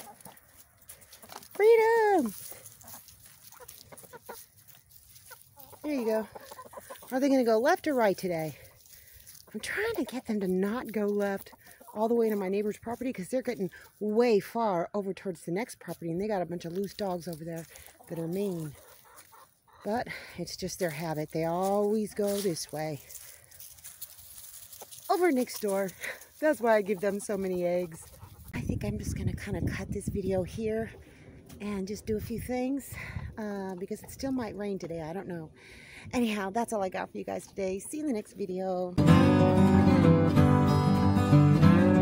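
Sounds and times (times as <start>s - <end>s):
rustling and ticking in leaves: 0.0s - 14.6s, 15.6s - 28.6s
chickens clucking softly: 2.7s - 7.2s, 17.8s - 19.9s, 26.8s - 28.6s.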